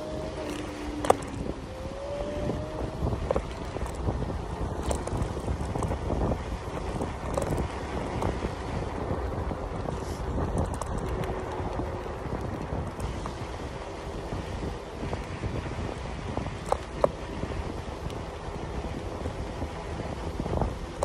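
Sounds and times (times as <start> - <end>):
rising motor whine: 0.0 - 5.4
scooter tyre rumble: 0.0 - 21.0
wind on microphone: 0.0 - 21.0.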